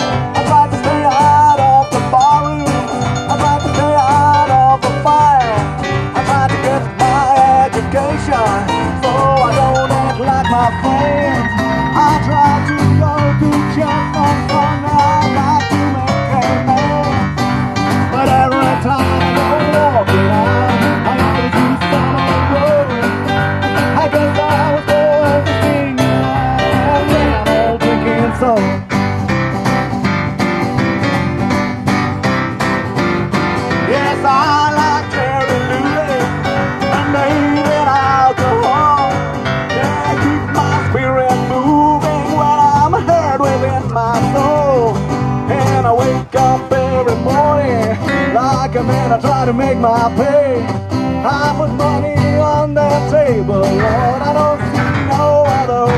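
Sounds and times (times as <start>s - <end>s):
bass guitar: 0.0s - 55.9s
cajon: 0.0s - 55.9s
electric keyboard: 0.0s - 55.9s
live band playing blues rock: 0.0s - 55.9s.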